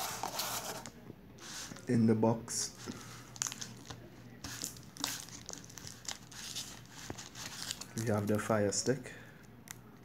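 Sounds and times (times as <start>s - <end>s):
cardboard packaging rustling: 0.0s - 1.8s, 2.8s - 8.5s
plastic wrapping crinkling: 3.2s - 8.5s.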